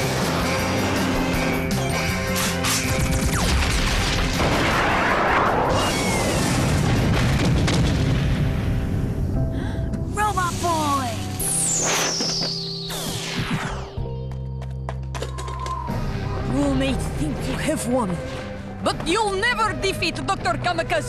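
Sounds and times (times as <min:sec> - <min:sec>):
long explosion rumble: 0:03.6 - 0:09.9
orchestral music: 0:08.1 - 0:21.0
laser blasts: 0:11.4 - 0:14.0.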